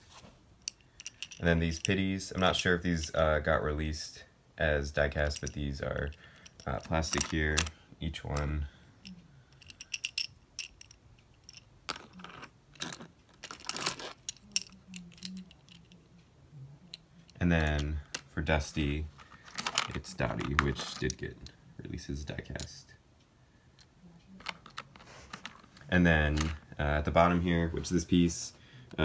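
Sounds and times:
plastic toy pieces clicking: 0.7s - 1.9s, 9.5s - 16.0s, 19.3s - 21.2s, 24.4s - 25.8s
rustling: 9.5s - 16.0s, 16.9s - 21.2s, 24.4s - 28.0s.

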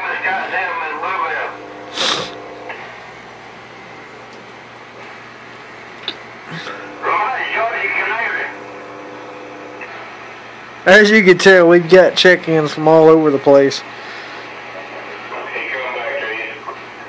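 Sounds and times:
voice over radio: 0.0s - 1.6s, 7.0s - 8.6s, 14.8s - 16.8s
radio speaker hum and hiss: 0.0s - 17.0s.

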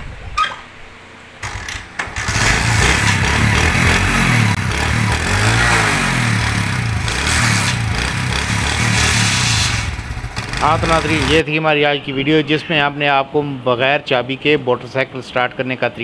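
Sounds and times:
motorcycle engine running: 1.4s - 11.4s.

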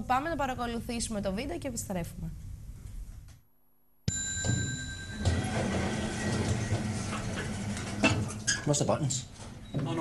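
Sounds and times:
electronic lift chime: 4.1s - 6.7s.

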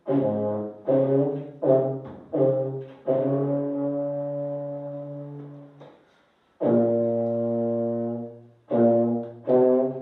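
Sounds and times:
brass horn playing slowly: 0.0s - 5.8s, 6.6s - 10.0s
breath: 5.9s - 6.6s.

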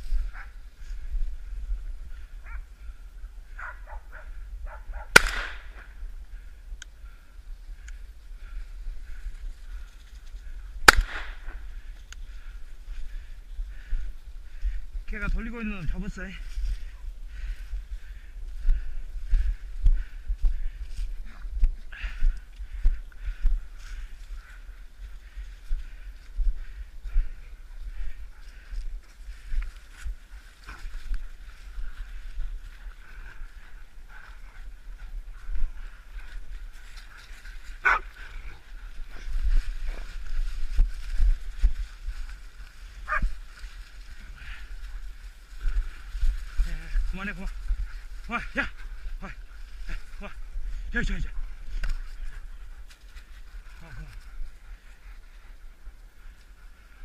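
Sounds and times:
gunshot with echo: 5.1s - 5.8s, 10.8s - 11.5s.

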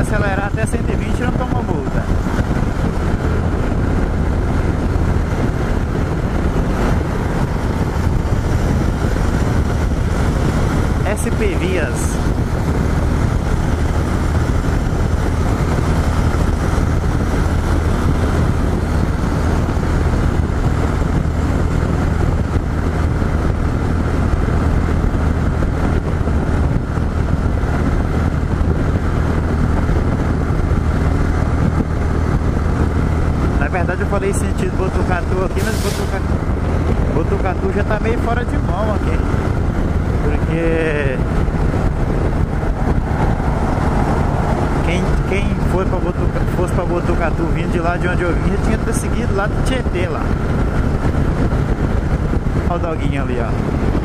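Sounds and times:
motorcycle engine cruising: 0.0s - 54.0s
wind rushing over microphone: 0.0s - 54.0s.

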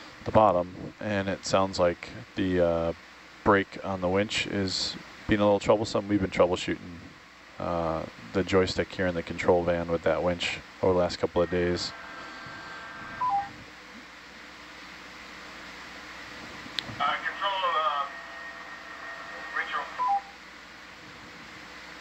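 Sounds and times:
faint steady hum: 0.0s - 22.0s
voice over radio comms: 17.0s - 18.2s, 19.3s - 20.1s.

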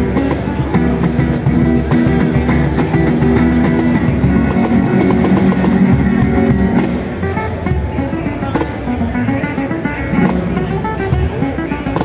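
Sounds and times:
nylon-string guitar flamenco: 0.0s - 12.0s
cajon slapped by hand: 0.1s - 7.1s, 8.5s - 8.9s.

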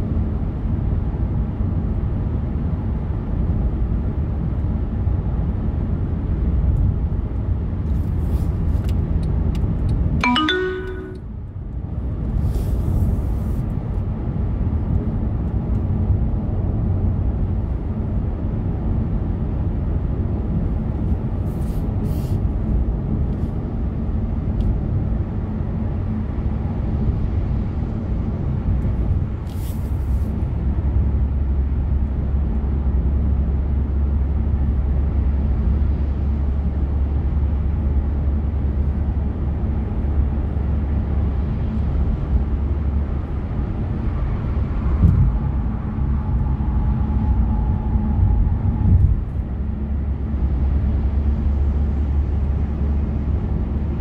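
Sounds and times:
road and engine rumble: 0.0s - 54.0s.

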